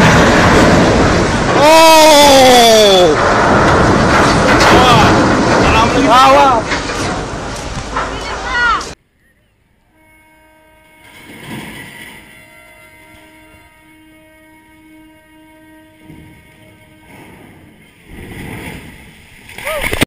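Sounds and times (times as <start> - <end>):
rush of water: 0.0 - 9.0, 17.9 - 20.0
ship's horn blast: 9.8 - 18.1.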